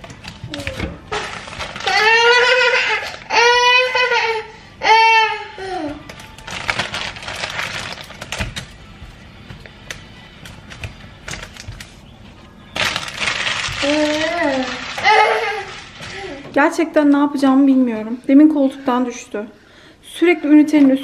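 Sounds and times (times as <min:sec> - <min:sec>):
plastic packaging crinkling: 0:00.0 - 0:03.4, 0:06.1 - 0:08.8, 0:10.5 - 0:12.0, 0:12.7 - 0:16.5.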